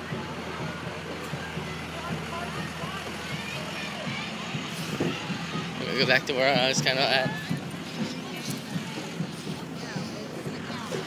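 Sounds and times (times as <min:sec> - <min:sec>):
crowd talking and calling: 0:00.0 - 0:11.0
truck engine running: 0:00.0 - 0:11.0.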